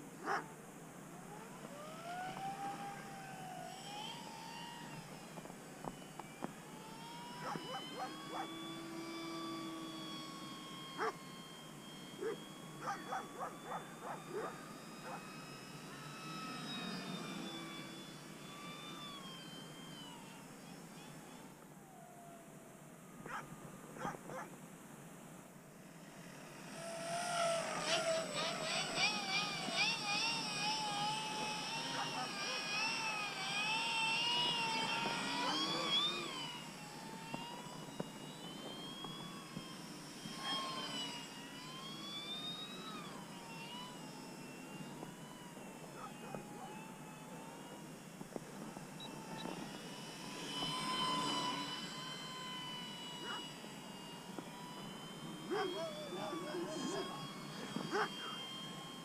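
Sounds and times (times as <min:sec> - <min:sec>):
model plane electric motor whine: 0:00.0 - 0:59.0.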